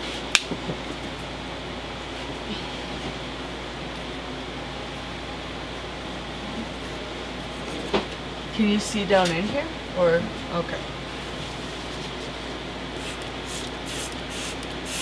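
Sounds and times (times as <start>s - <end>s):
room noise hum and hiss: 0.0s - 15.0s.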